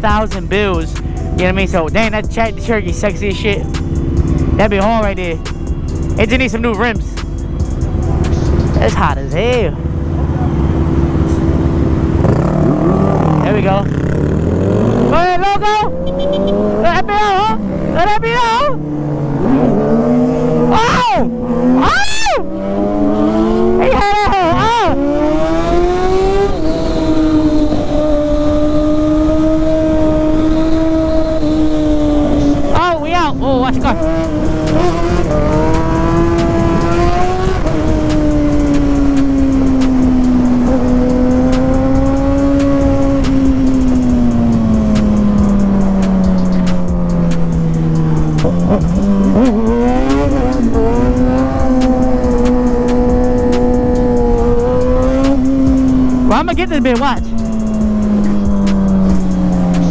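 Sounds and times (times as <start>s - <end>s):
motorcycle engine at high revs: 8.2s - 59.9s.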